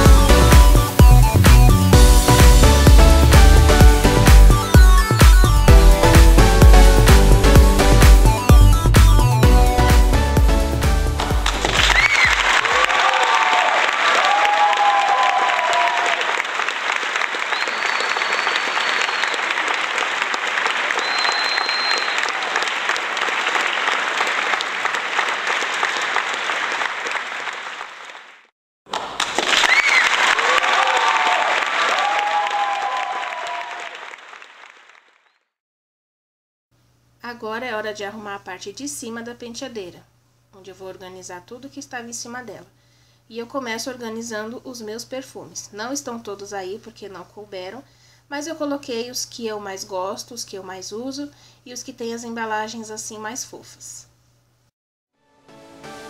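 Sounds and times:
applause and cheering: 11.2s - 35.5s
whoops and whistles: 11.8s - 12.4s, 17.5s - 19.5s, 21.0s - 22.4s.

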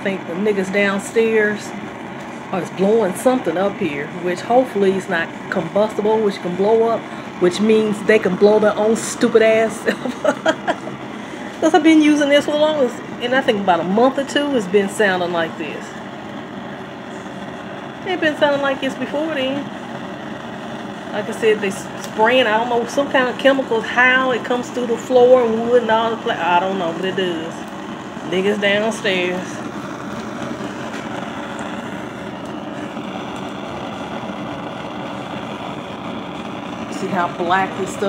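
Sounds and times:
gas burner flame rushing: 0.0s - 38.0s.

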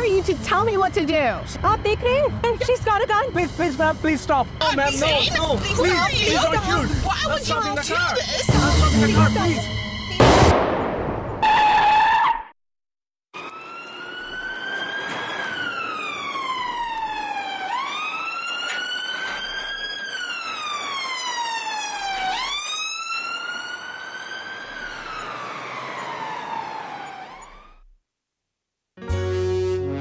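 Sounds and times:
emergency siren wailing: 4.6s - 10.3s, 13.4s - 27.8s.

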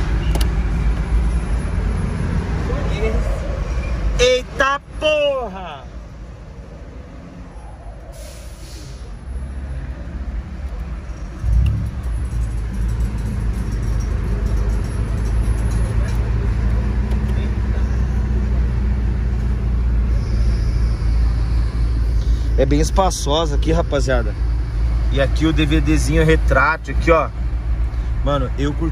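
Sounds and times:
car engine starting and idling: 10.6s - 17.8s.

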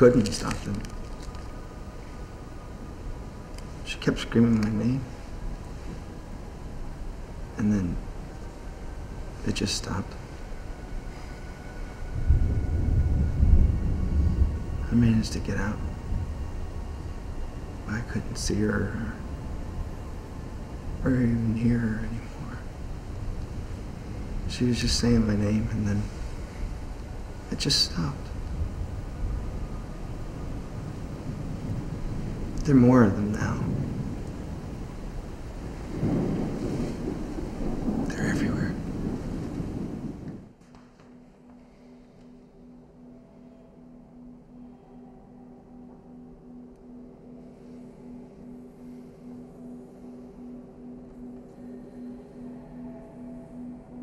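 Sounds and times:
deep rolling thunder: 6.4s - 40.6s
deep low rumble: 10.0s - 27.5s.

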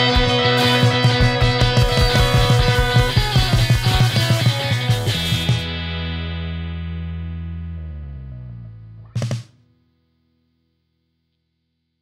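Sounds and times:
distorted electric guitar chord: 0.0s - 9.4s.

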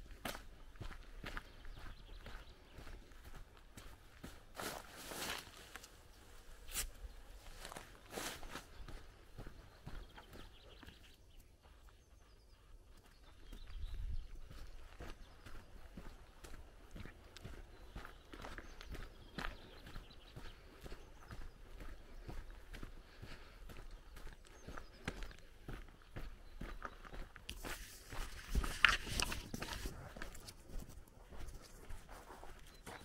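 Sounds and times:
footsteps on gravel: 0.0s - 6.0s, 6.7s - 11.0s, 13.0s - 33.0s.

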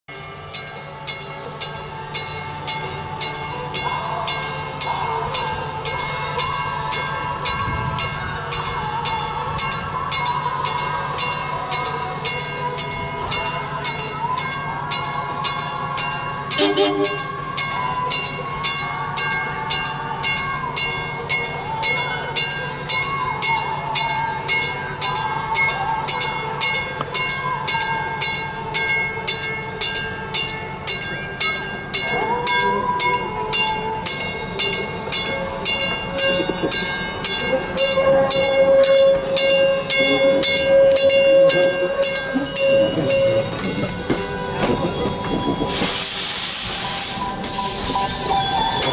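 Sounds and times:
train low drone: 0.0s - 48.9s
regular ringing bell: 0.1s - 45.9s
train wheels squealing: 0.5s - 48.9s.

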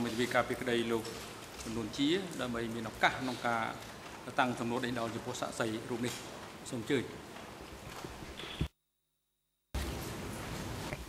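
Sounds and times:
microphone hiss: 0.0s - 8.7s, 9.8s - 11.0s.

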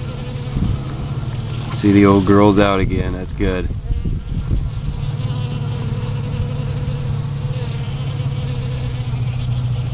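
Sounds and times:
bees buzzing: 0.0s - 9.9s.

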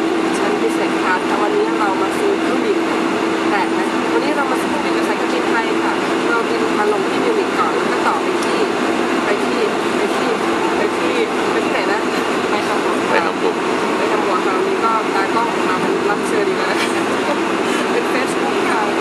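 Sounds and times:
airliner cabin drone: 0.0s - 19.0s
woman talking: 0.0s - 19.0s.

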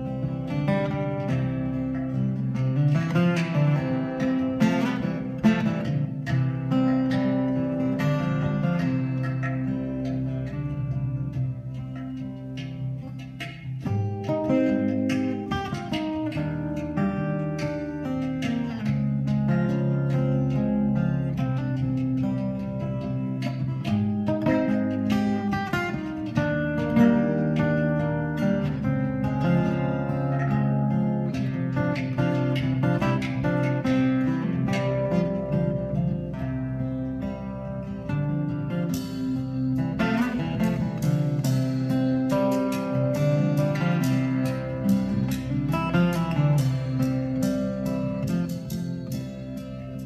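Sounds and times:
acoustic guitar plucked notes: 0.0s - 50.0s
light hand percussion: 0.0s - 50.0s.

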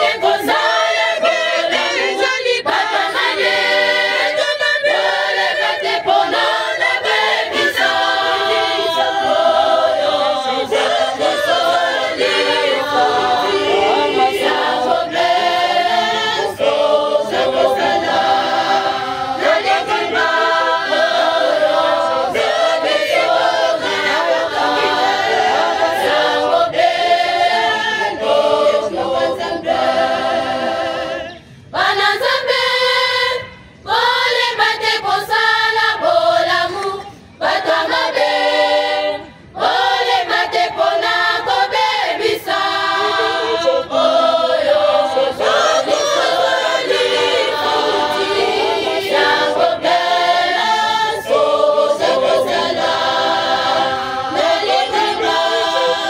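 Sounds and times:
choir singing a cappella: 0.0s - 56.0s.

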